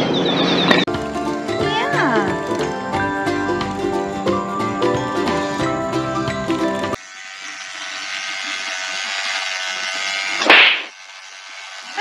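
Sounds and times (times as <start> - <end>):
electric toothbrush buzzing: 0.8 - 12.0.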